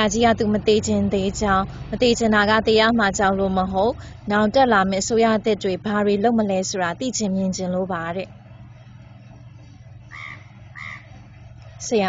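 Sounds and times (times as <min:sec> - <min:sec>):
steady low hum: 0:00.0 - 0:12.0
bird calling: 0:10.1 - 0:11.2.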